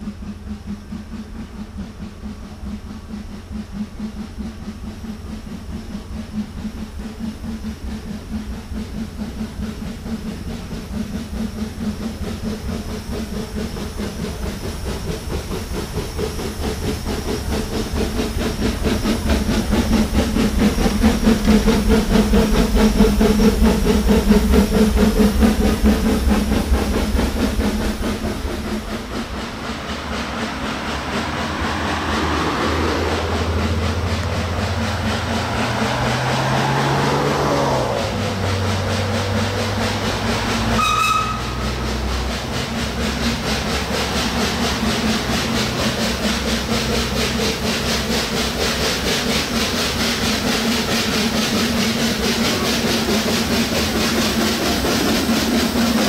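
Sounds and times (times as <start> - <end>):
steam hissing: 0.0 - 56.0
steam locomotive chuffing: 0.0 - 56.0
rumble rising and falling in tone: 19.3 - 39.7.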